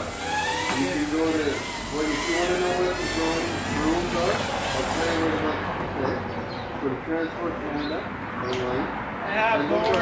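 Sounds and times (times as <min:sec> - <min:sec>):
people talking indistinctly: 0:00.7 - 0:10.0.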